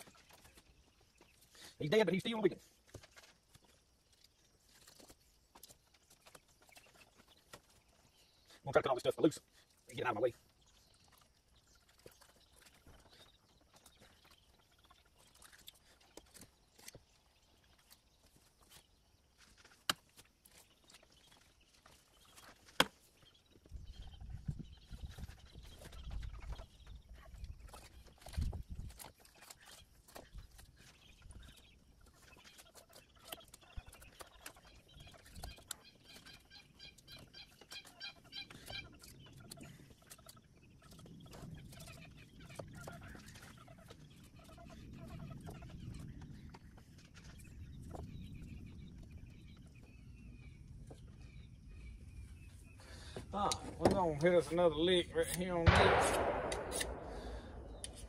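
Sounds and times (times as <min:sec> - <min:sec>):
chickens clucking: 0:04.8 - 0:55.0
sharp click: 0:55.3 - 0:57.1.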